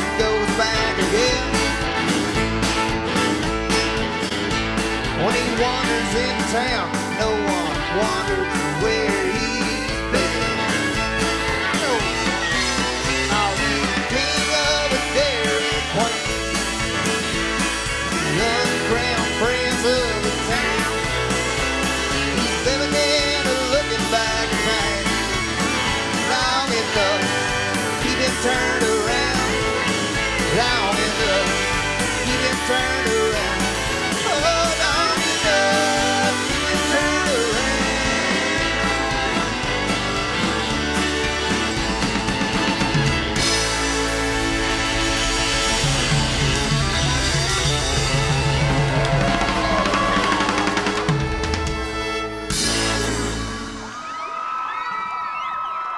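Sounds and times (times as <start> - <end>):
strummed acoustic guitar: 0.0 - 53.6
fiddle melody: 0.0 - 53.9
bass: 0.0 - 54.3
drums: 0.0 - 55.9.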